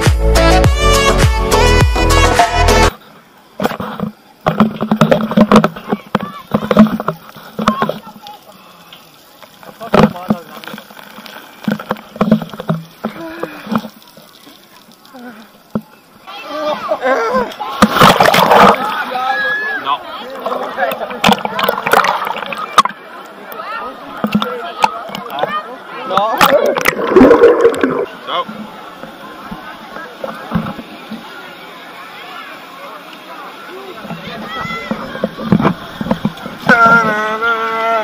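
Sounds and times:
rushing and splashing water: 0:02.4 - 0:38.0
voices calling out: 0:02.4 - 0:38.0.

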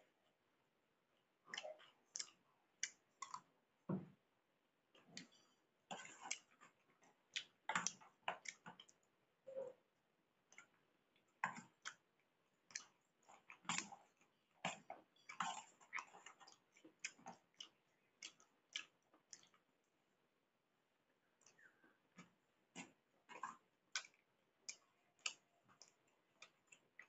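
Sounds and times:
chewing: 0:01.5 - 0:03.5, 0:05.0 - 0:09.1, 0:10.5 - 0:19.7, 0:21.3 - 0:27.0.

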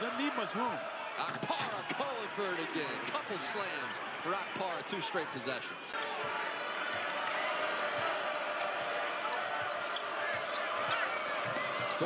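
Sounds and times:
arena crowd noise: 0:00.0 - 0:12.0
sneaker squeaks: 0:09.6 - 0:12.0.

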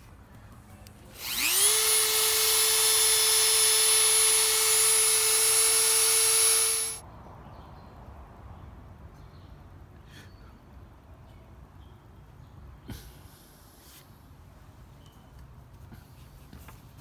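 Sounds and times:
rotary tool whining: 0:01.1 - 0:07.0.

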